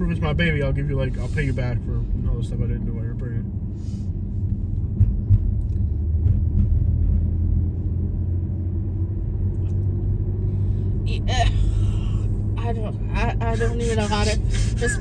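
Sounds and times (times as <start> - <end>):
car interior engine and tyre rumble: 0.0 - 15.0.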